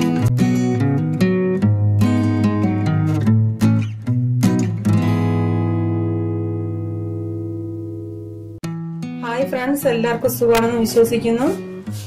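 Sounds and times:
strummed guitar chord ringing: 0.0 - 11.0.

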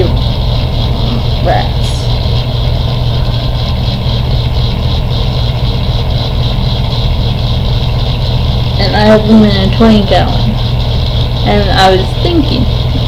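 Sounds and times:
loud low machine hum: 0.0 - 13.0.

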